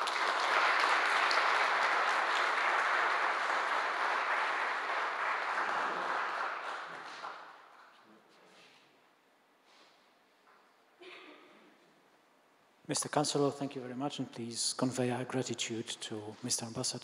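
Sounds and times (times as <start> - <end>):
audience applauding: 0.0 - 8.0.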